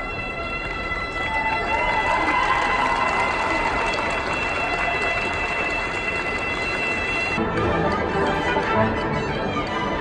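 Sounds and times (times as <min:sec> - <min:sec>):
crowd chatter in a hall: 0:00.0 - 0:10.0
orchestra music: 0:03.6 - 0:10.0.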